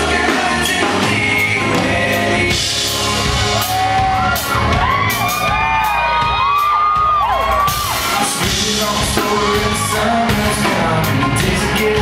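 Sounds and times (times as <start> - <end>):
country band playing live: 0.0 - 12.0
audience whooping: 2.7 - 10.6
person singing: 8.1 - 12.0.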